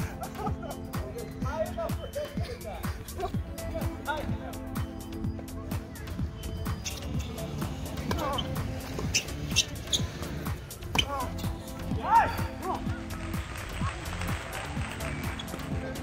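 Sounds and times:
background music: 0.0s - 16.0s
tennis ball bouncing: 7.6s - 10.0s.

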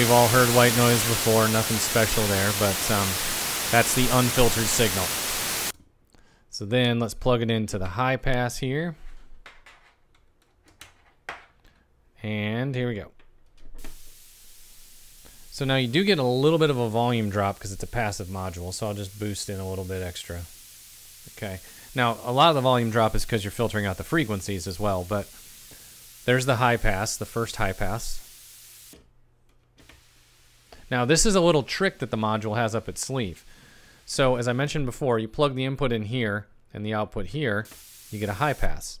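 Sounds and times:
thin high synth hiss: 0.0s - 5.7s, 13.8s - 29.0s, 29.8s - 34.9s, 37.6s - 39.0s
filtered white noise: 0.0s - 5.8s, 13.7s - 29.0s, 29.8s - 36.4s, 37.3s - 39.0s.

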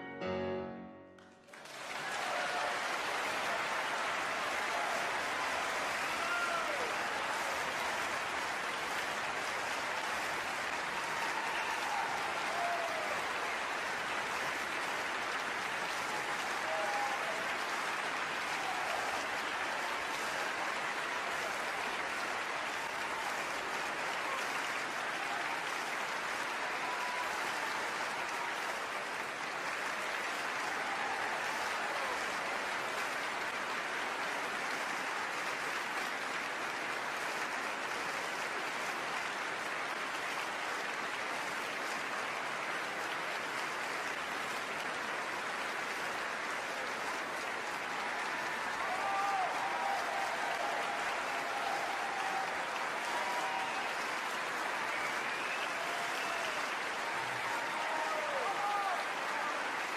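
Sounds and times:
audience applause: 1.2s - 59.9s.

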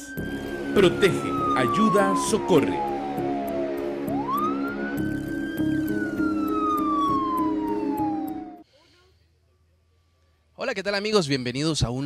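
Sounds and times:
held music chords: 0.0s - 8.6s
siren wail: 0.0s - 8.6s.

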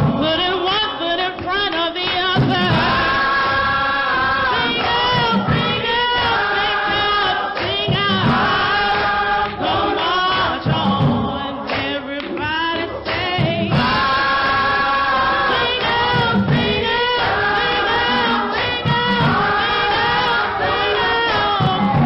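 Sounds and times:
gospel choir singing in harmony: 0.0s - 22.0s.

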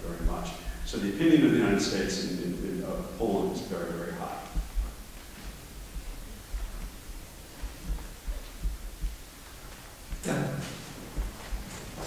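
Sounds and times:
low thumps on handheld microphone: 0.0s - 1.7s, 2.9s - 12.0s
faint room hum: 0.0s - 12.0s.

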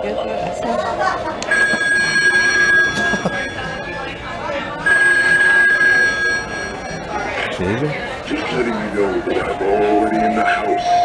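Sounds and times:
toy telephone ringing through speaker: 1.5s - 7.8s.

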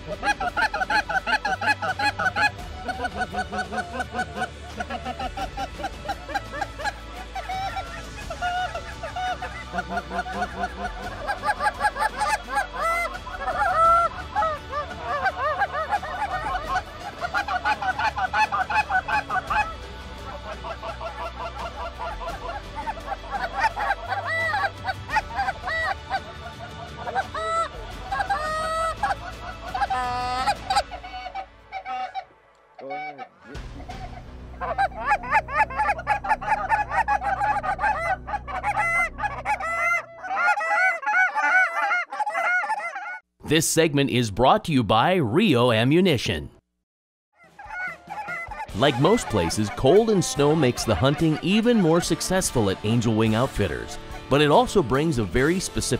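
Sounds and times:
geese honking: 0.0s - 43.2s, 47.4s - 55.9s.

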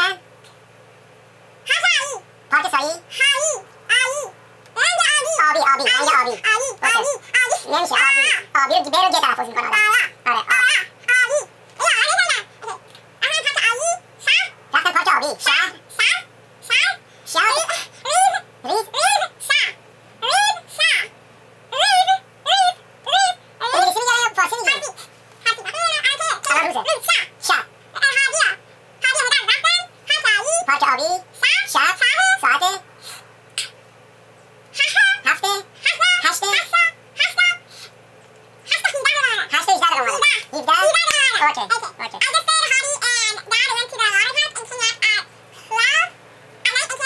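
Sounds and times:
person making garbled vocal sounds: 1.7s - 21.0s
girl's garbled voice: 1.7s - 21.1s, 21.7s - 32.8s, 34.8s - 37.9s, 38.7s - 47.0s.

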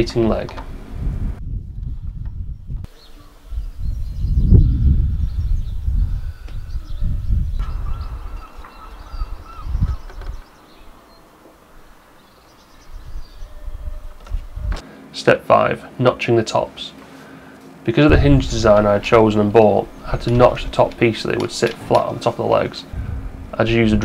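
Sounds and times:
wind rumble on microphone: 0.0s - 11.1s, 12.7s - 14.8s, 18.1s - 21.4s, 22.9s - 24.0s
faint bird or insect chirps: 2.6s - 13.9s.

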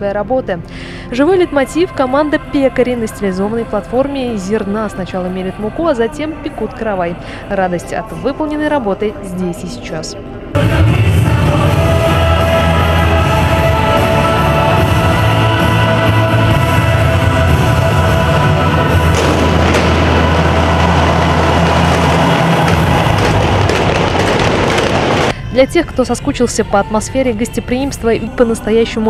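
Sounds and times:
loud rock music: 10.2s - 25.6s
rushing noise: 10.6s - 25.5s.

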